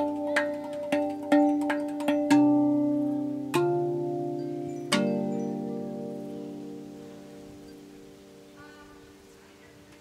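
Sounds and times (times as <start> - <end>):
steel tongue drum melody: 0.0 - 9.5.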